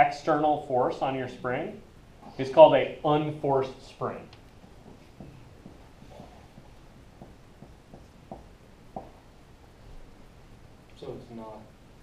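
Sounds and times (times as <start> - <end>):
marker writing on a whiteboard: 4.6 - 9.2.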